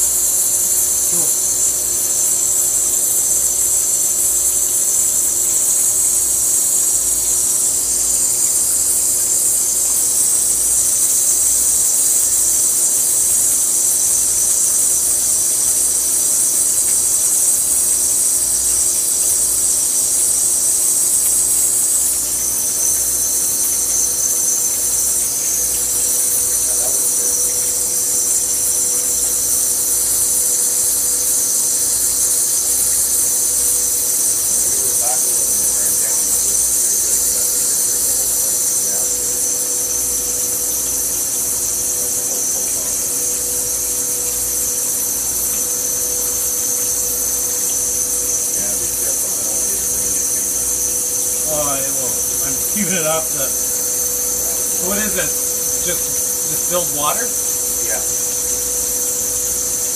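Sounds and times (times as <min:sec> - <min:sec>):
high-pitched sizzling hiss: 0:00.0 - 0:59.9
machine hum: 0:00.0 - 0:59.9.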